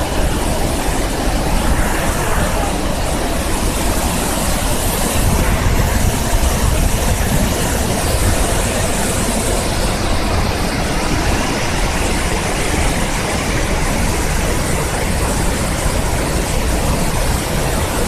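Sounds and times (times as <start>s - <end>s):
waterfall and rapids rushing: 0.0s - 18.0s.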